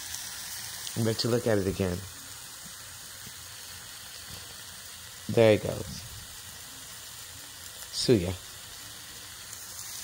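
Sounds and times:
meat skewers sizzling on grill: 0:00.0 - 0:10.0.

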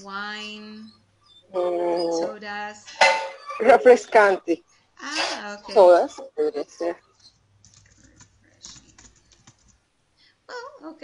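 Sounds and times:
computer keyboard typing: 0:07.6 - 0:09.8.

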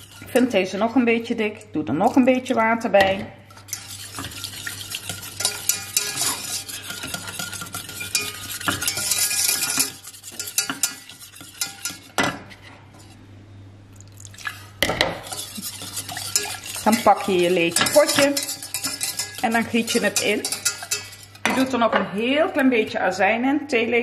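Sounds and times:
whisk scraping steel saucepan: 0:00.0 - 0:01.2, 0:02.0 - 0:13.2, 0:14.4 - 0:21.8.

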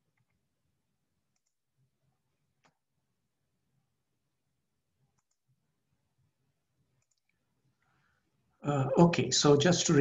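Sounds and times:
computer mouse clicks: 0:01.3 - 0:01.6, 0:05.1 - 0:05.5, 0:07.0 - 0:07.4.

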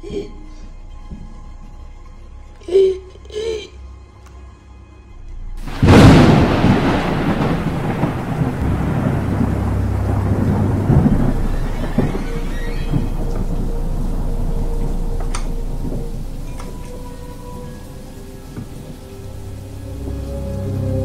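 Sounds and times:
thunder crack and rumble: 0:05.6 - 0:20.3
steady rain: 0:05.6 - 0:21.0.

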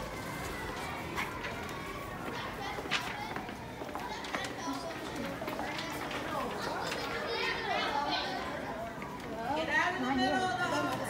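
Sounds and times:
children chattering: 0:00.0 - 0:11.0.

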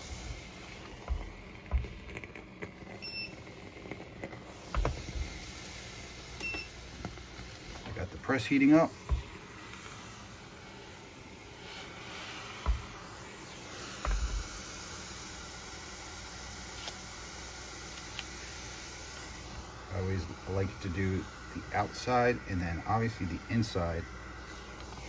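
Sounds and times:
steamer hissing: 0:00.0 - 0:25.0.

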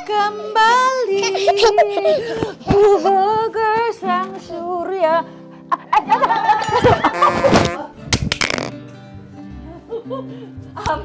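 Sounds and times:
acoustic guitar strumming: 0:06.5 - 0:09.5.

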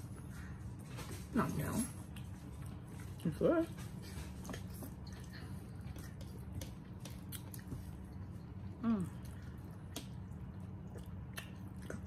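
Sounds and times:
people chewing and slurping noodles: 0:00.0 - 0:12.0.

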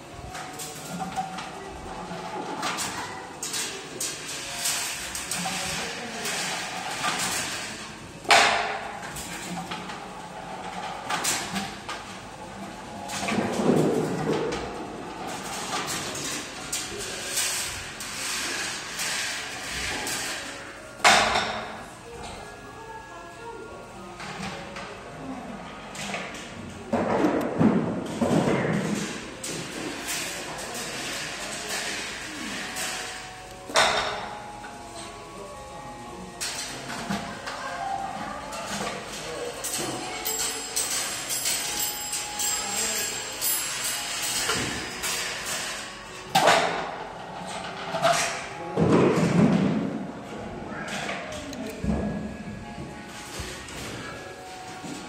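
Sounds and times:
balls rolling on metal rails: 0:00.2 - 0:21.9, 0:25.8 - 0:35.2, 0:38.1 - 0:51.2.

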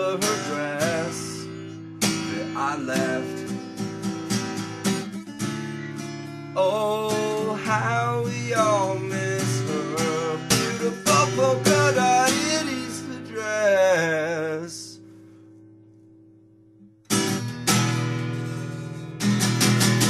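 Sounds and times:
man singing: 0:00.0 - 0:03.6, 0:06.6 - 0:15.0
acoustic guitar strumming: 0:00.0 - 0:20.0.

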